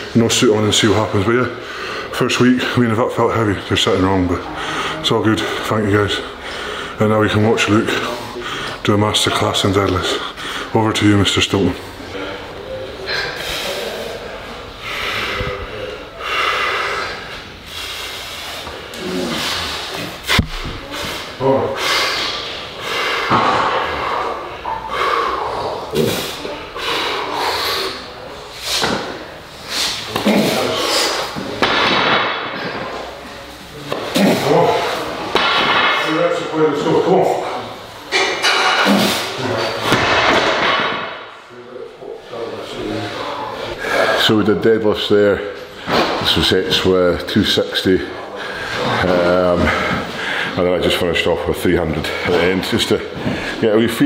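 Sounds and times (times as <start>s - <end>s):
man breathing hard: 1.5s - 2.2s, 6.4s - 7.0s, 13.1s - 20.1s, 20.8s - 29.0s, 48.3s - 50.6s
man grunting and breathing hard: 21.4s - 28.1s.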